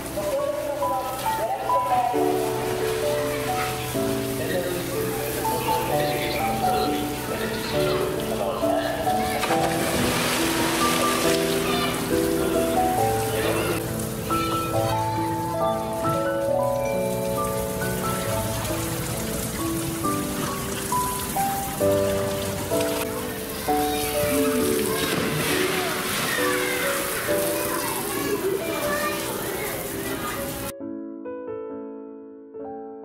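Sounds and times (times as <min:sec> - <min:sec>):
water splashing and churning: 0:00.0 - 0:30.7
soft piano music: 0:00.0 - 0:33.0.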